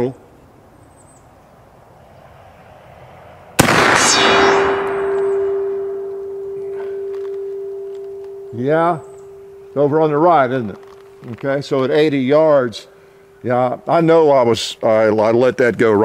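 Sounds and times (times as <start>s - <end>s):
rifle shot with rolling echo: 3.6s - 8.3s
distant steel gong ringing: 4.1s - 15.2s.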